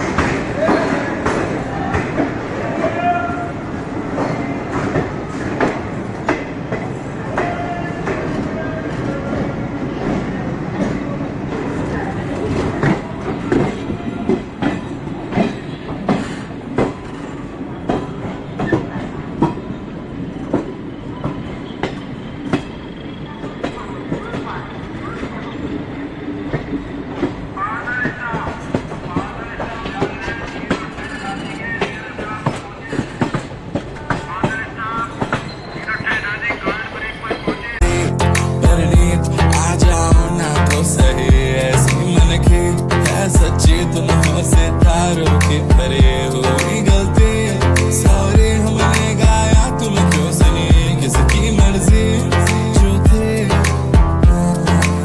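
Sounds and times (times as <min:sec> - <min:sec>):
train wheels over rail joints: 0:00.0 - 0:37.9
train rumble: 0:00.0 - 0:55.0.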